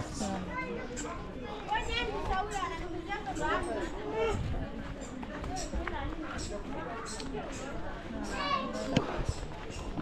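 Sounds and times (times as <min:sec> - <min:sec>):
people talking in street: 0:00.0 - 0:10.0.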